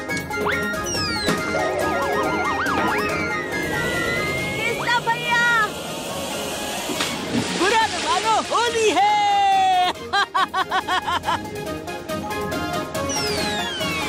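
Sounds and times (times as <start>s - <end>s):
cartoon background music: 0.0s - 4.9s, 9.5s - 14.0s
water splashing sound effect: 6.8s - 8.9s.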